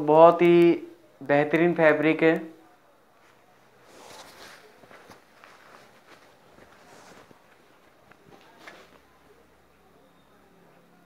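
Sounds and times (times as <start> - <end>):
rustling of fabric and paper: 3.1 - 9.2.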